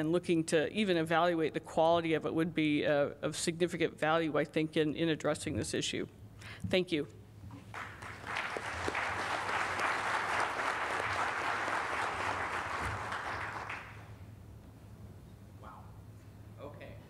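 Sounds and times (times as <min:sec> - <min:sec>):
audience applauding: 0:07.6 - 0:14.2.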